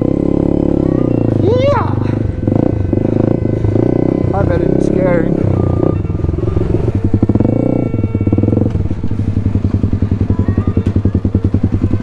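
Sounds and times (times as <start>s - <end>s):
dirt bike engine idling: 0.0s - 12.0s.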